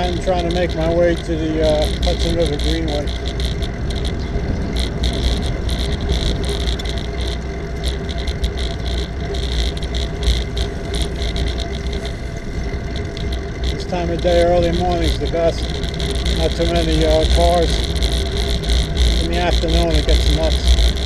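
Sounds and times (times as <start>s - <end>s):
road rumble: 0.0s - 21.0s
small rattling clicks: 0.0s - 21.0s
wind on microphone: 0.0s - 21.0s.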